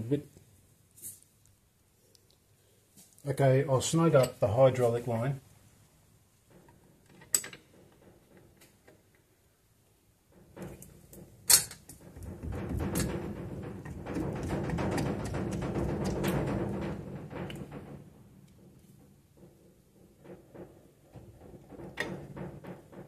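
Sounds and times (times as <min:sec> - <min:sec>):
rapid clicking and rattling: 0:10.3 - 0:23.0.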